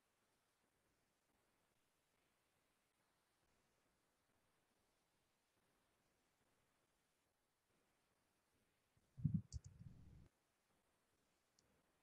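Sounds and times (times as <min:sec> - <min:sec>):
faint microphone hiss: 0:00.0 - 0:12.0.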